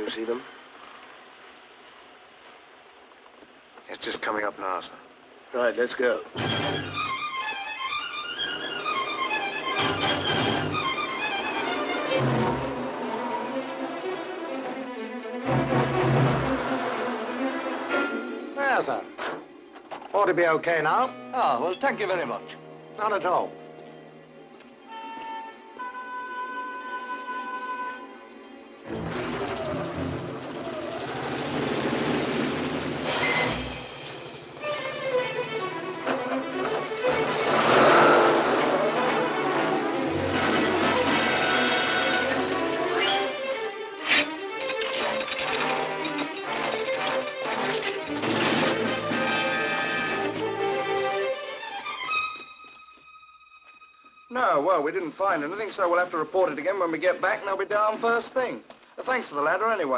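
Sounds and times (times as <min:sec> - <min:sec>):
film score music: 0:05.5 - 0:57.9.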